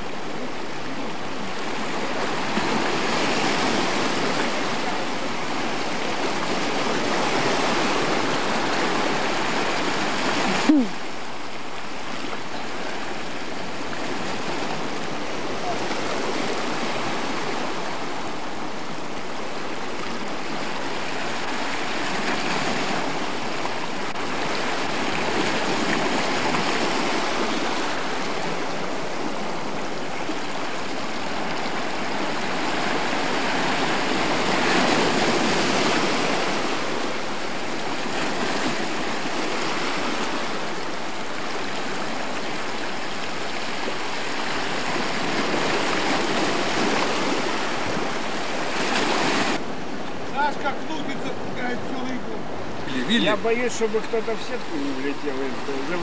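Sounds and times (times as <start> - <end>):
sea water rushing and splashing: 0.0 - 56.0.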